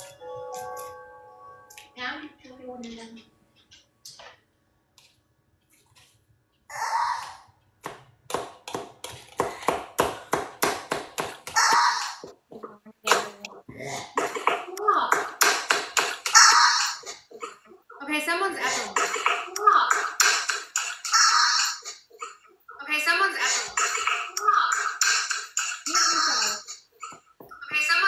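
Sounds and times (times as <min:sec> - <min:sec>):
knife chopping on plastic board: 0:07.8 - 0:11.6
voices talking: 0:11.8 - 0:13.7.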